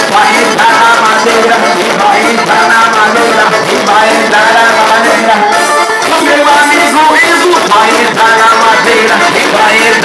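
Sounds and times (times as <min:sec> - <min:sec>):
dance band playing latin music: 0:00.0 - 0:10.0.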